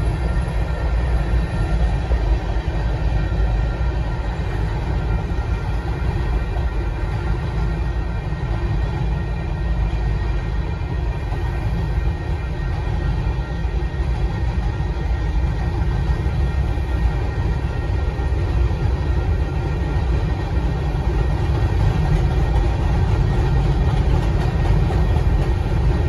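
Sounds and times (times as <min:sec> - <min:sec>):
faint steady tones: 0:00.0 - 0:26.0
freight train rumbling over rails: 0:00.0 - 0:26.0.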